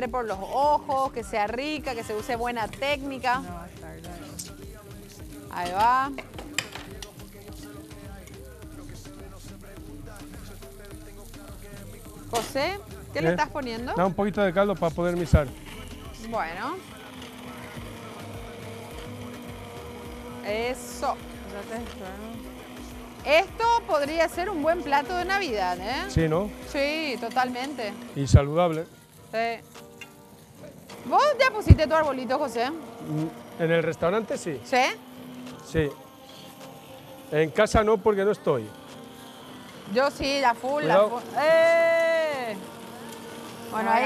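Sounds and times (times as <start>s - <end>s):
immersion blender humming: 0.0s - 44.0s.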